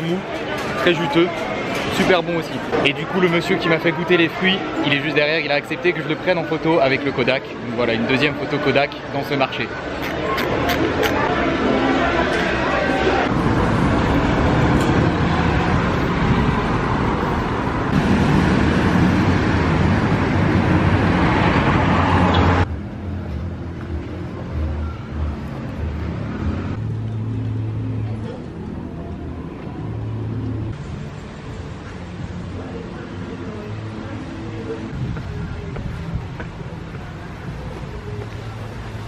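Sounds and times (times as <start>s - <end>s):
busy market hubbub: 0.0s - 39.0s
road traffic hum: 0.0s - 39.0s.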